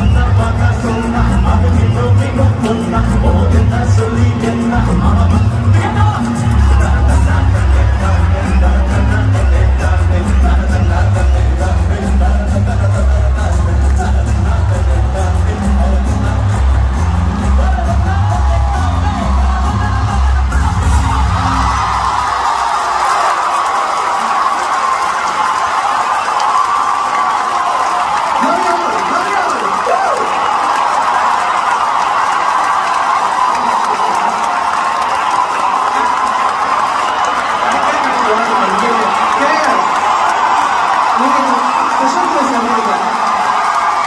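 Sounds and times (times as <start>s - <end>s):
band's heavy bass: 0.0s - 22.8s
crowd cheering and screaming: 0.0s - 44.0s
voice over cheering: 15.1s - 44.0s.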